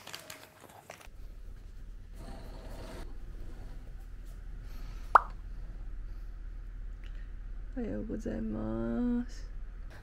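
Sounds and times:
faint steady hum: 0.9 - 10.0.

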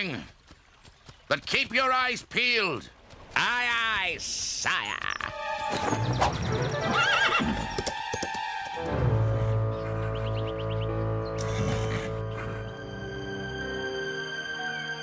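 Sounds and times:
background music chords: 5.3 - 15.0
horse whinnying: 6.8 - 7.7.

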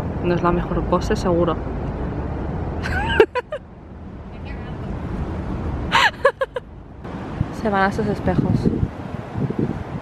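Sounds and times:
low outdoor rumble: 0.0 - 10.0
woman laughing: 2.8 - 3.6, 5.9 - 6.7.

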